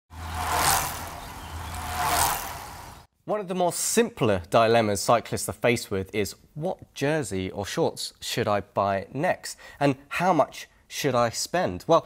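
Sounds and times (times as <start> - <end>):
rushing whoosh: 0.1 - 3.1.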